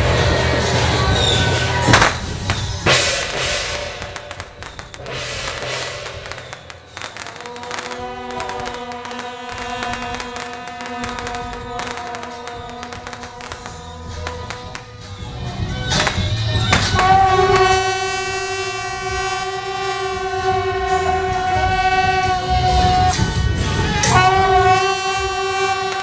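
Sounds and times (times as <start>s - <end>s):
loud crash: 0.0s - 18.5s
rapid crackling and percussion: 0.0s - 26.0s
held brass note: 2.9s - 26.0s.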